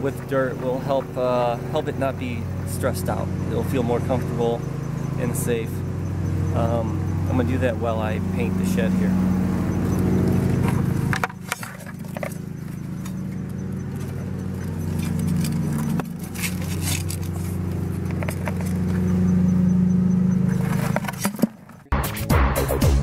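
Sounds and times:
low engine drone: 0.0 - 23.0
light scrapes and clicks: 10.6 - 13.2, 14.0 - 19.1.

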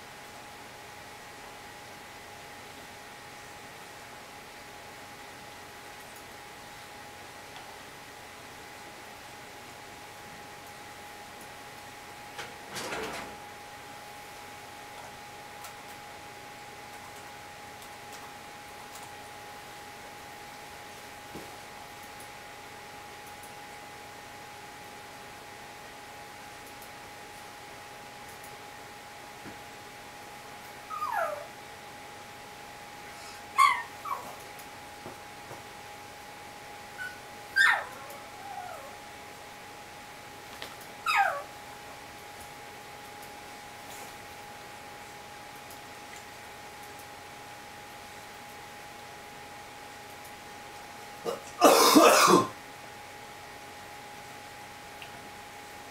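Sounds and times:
faint hum: 0.0 - 55.9
puppy whining and yipping: 30.9 - 31.5, 33.5 - 34.4, 37.0 - 39.0, 41.0 - 41.5.

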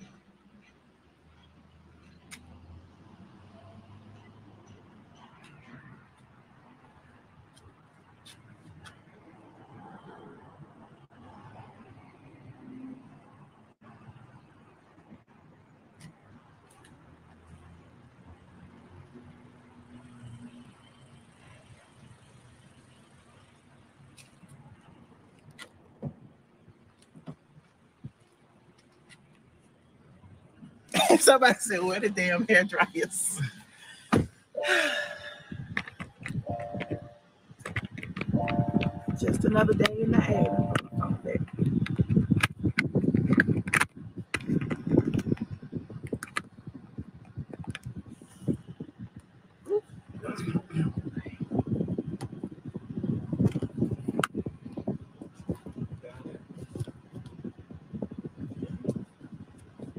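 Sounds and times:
low traffic hum: 0.0 - 59.9
phone handling rustling: 35.7 - 37.0.

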